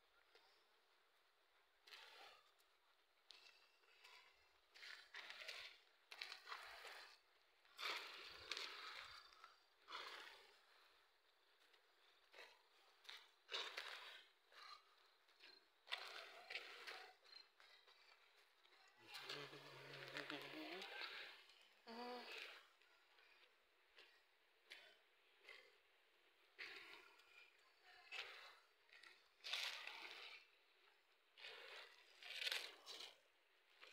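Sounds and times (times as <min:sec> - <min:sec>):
faint outdoor ambience: 0:00.0 - 0:33.9
person's voice: 0:19.0 - 0:21.2.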